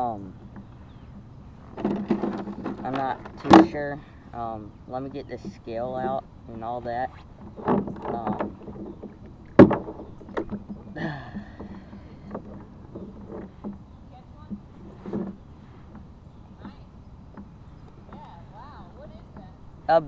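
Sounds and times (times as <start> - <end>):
gear knocks and clicks: 0.0 - 4.0, 7.4 - 19.6.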